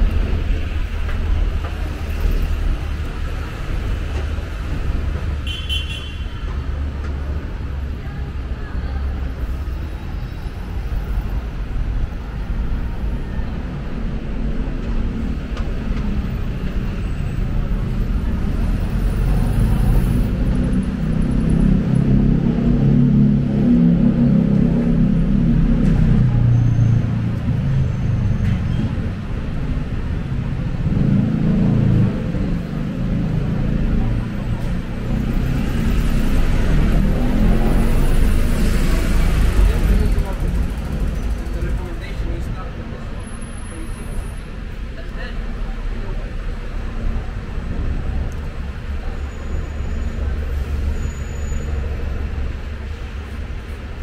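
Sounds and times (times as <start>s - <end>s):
indistinct voices of passers-by: 0.0s - 5.5s, 6.1s - 54.0s
road traffic rumbling past: 0.0s - 54.0s.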